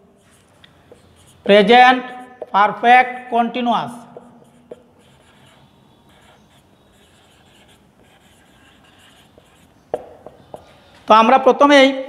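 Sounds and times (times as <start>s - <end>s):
marker scratching on whiteboard: 0.0s - 2.8s, 3.9s - 11.1s.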